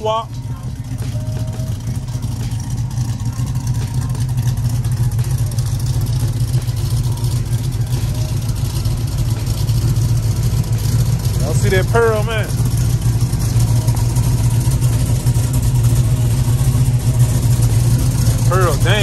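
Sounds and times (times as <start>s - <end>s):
pickup truck engine idling: 0.0s - 19.0s.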